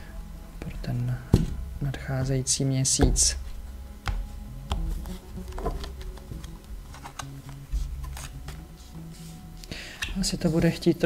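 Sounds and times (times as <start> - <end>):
cards being shuffled: 3.0 - 9.4.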